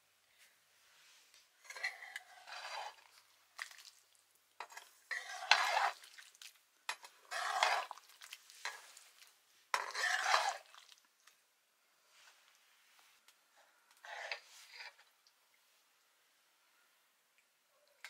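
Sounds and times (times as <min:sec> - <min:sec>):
wooden spoon scraping metal pan: 0:01.6 - 0:03.2, 0:04.6 - 0:06.1, 0:06.9 - 0:08.0, 0:08.6 - 0:09.1, 0:09.7 - 0:10.8, 0:14.0 - 0:15.1.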